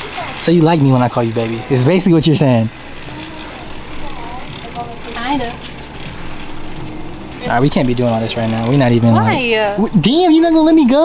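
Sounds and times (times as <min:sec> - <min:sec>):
faint voices: 0:00.0 - 0:11.0
low hum: 0:00.4 - 0:11.0.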